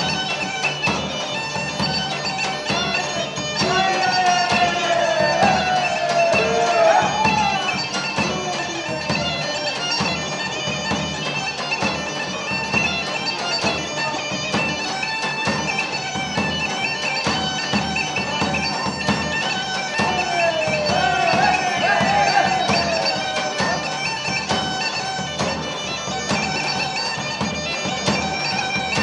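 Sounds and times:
bagpipe melody with drone: 0.0 - 29.0.

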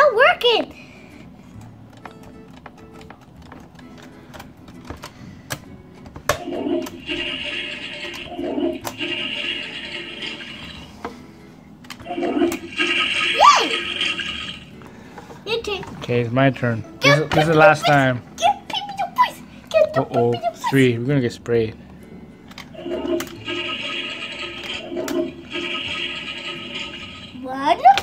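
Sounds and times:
toy toilet flushing sound: 6.3 - 11.0, 12.0 - 14.7, 22.6 - 27.4.

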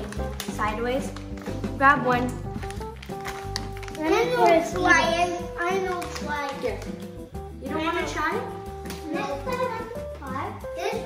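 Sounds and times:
background music with low bass: 0.0 - 11.0
child speaking: 4.0 - 6.9, 7.6 - 11.0.

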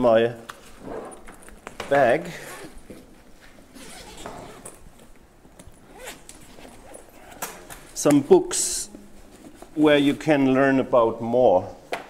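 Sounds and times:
rummaging through a bag: 0.6 - 8.0.

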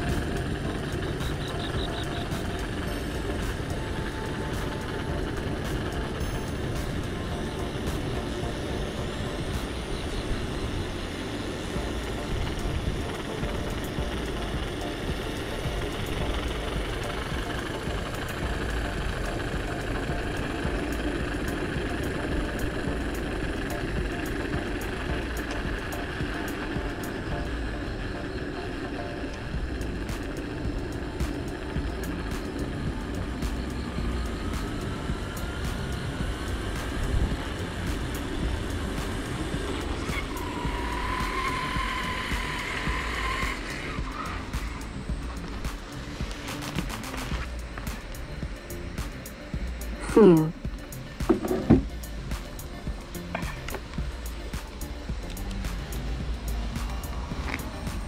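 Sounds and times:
held higher tone: 0.0 - 46.4, 47.3 - 58.0
faint steady whine: 0.0 - 58.0
wheel rolling noise: 0.0 - 58.0.

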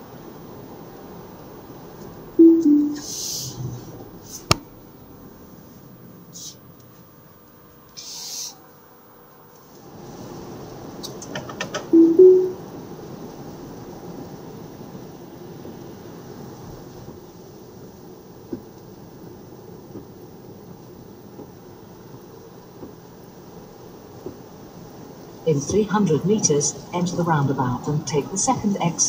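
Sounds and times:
rising two-note chime: 2.4 - 3.1, 12.0 - 12.6.

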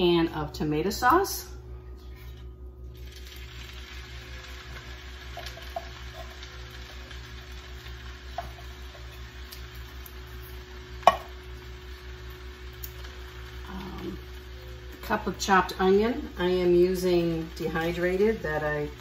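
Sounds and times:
faint sizzle: 0.0 - 19.0
steady low hum: 0.0 - 19.0
light clicks and tap on pan: 11.0 - 11.3.

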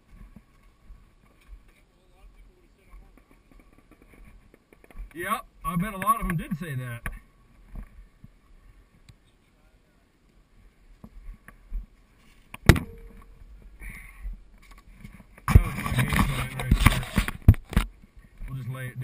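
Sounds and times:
panel rubbing and scraping: 15.5 - 17.5.

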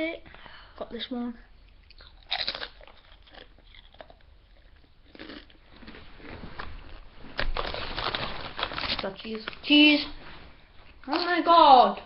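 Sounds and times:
tortilla chip crunching: 1.9 - 9.1.

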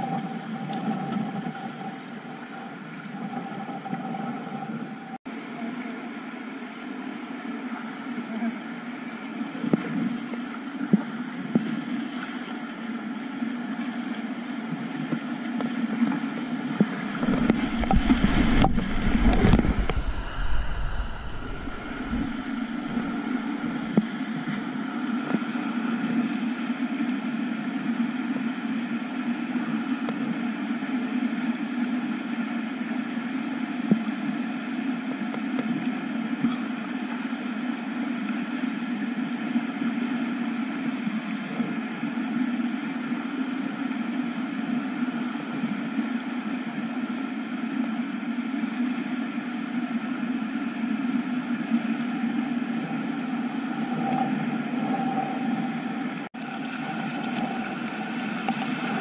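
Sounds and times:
muffled rush of river rapids: 17.0 - 24.8.

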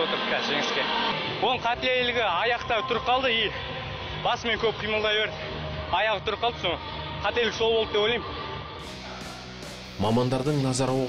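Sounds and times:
background music: 0.0 - 11.0
man talking: 10.0 - 11.0.

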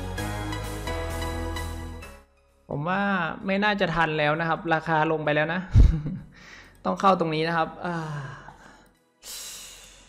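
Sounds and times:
man breathy exhale: 7.9 - 10.0.

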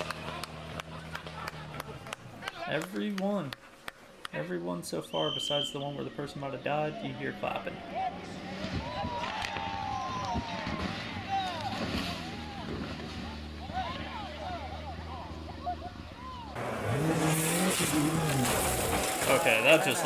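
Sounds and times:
rally car engine: 0.0 - 2.6, 7.6 - 20.0
spectators shouting: 7.6 - 20.0
engine revving: 9.6 - 20.0.

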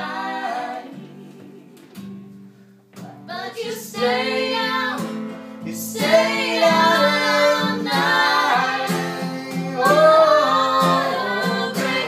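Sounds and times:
strummed guitar: 0.0 - 12.0
person singing: 5.7 - 12.0.

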